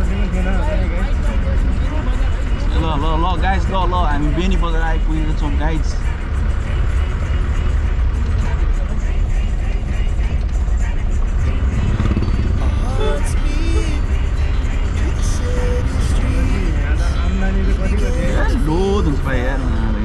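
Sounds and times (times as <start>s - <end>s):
car engine and road rumble: 0.0s - 20.0s
music: 0.0s - 20.0s
person speaking: 12.6s - 14.1s, 15.0s - 20.0s.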